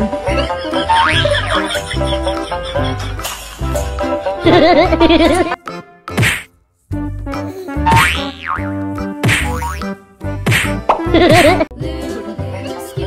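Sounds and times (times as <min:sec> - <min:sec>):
upbeat background music: 0:00.0 - 0:13.0
cartoon whack and boing hits: 0:06.1 - 0:06.5, 0:07.8 - 0:11.1.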